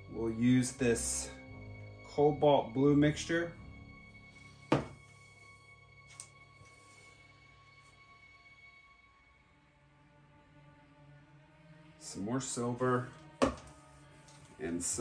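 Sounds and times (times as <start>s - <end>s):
faint background music: 0.0s - 15.0s
plastic cup thunk: 4.7s - 5.0s, 13.4s - 13.7s.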